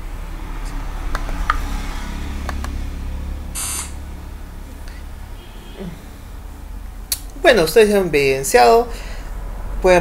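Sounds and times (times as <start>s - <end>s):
low steady hum: 0.0s - 10.0s
electronic beep: 3.6s - 4.0s
short hissing buzz: 3.6s - 4.0s.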